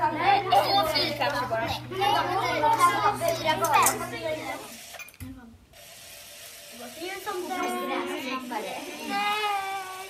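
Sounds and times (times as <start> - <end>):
children murmuring: 0.0 - 4.9, 6.7 - 10.0
child's voice: 0.0 - 5.4, 7.0 - 10.0.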